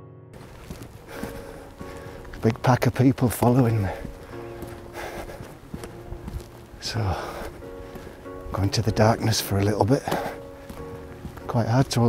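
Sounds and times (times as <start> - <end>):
footsteps on gravel: 0.4 - 12.0.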